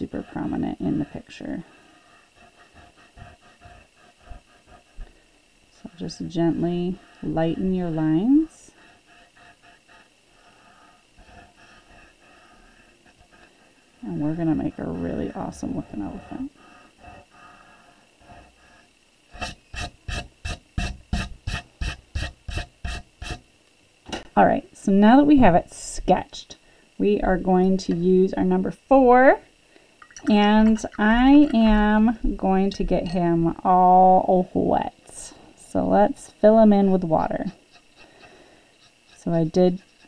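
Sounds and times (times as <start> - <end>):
eraser rubbing on paper: 19.4 - 23.4, 37.3 - 40.0.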